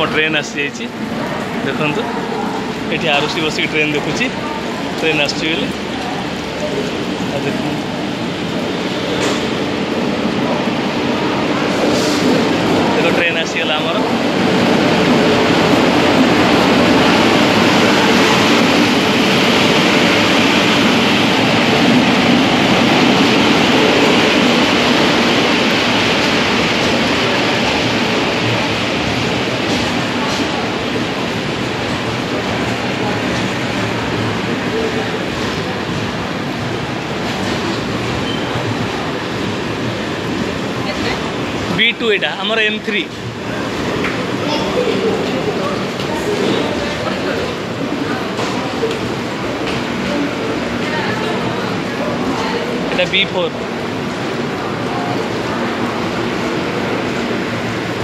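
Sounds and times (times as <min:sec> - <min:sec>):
train coaches rumbling: 0:00.0 - 0:58.0.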